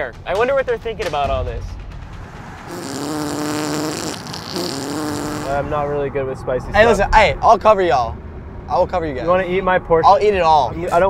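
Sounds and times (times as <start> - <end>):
fart noises from car speakers: 2.7 - 5.6.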